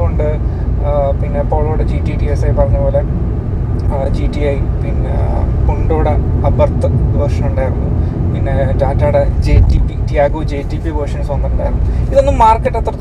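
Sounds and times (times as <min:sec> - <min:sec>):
man talking: 0:00.0 - 0:03.1, 0:03.8 - 0:13.0
low rumble of moving car: 0:00.0 - 0:13.0.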